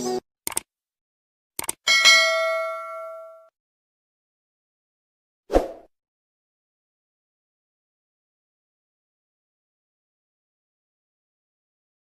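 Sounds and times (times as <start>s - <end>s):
bell-like ding: 1.9s - 3.5s.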